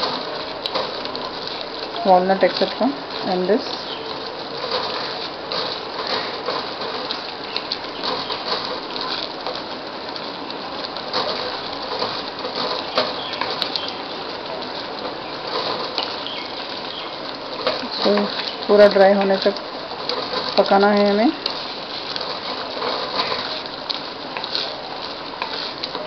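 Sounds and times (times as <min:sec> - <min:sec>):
mixture bubbling and spluttering: 0:00.0 - 0:26.0.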